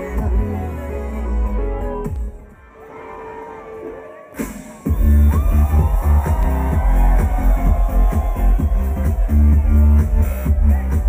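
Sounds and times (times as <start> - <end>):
electronic dance music: 0.0 - 11.0
heavy bass beat: 4.9 - 11.0.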